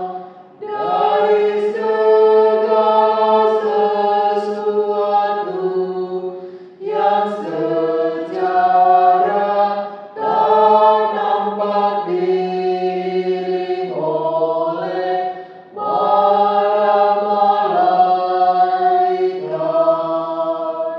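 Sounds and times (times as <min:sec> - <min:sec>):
choir chanting: 0:00.0 - 0:20.9.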